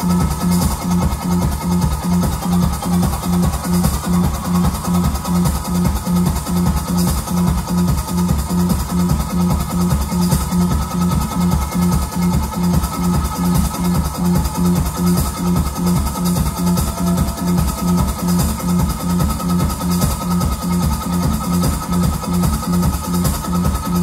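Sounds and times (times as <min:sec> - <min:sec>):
drum kit beat: 0:00.0 - 0:24.0
electric bass pulsing: 0:00.0 - 0:24.0
hi-hats: 0:00.0 - 0:24.0.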